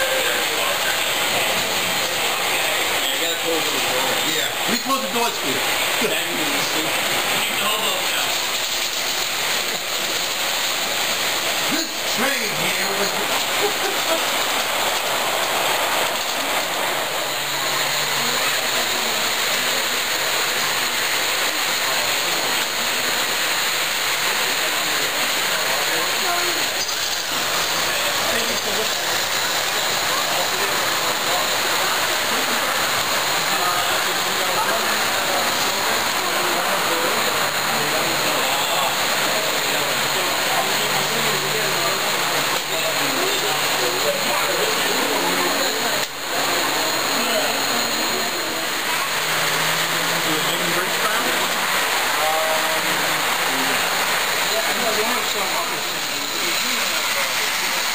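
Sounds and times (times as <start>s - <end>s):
indistinct background voices: 0.0s - 57.9s
model trains rumbling on track: 0.0s - 57.9s.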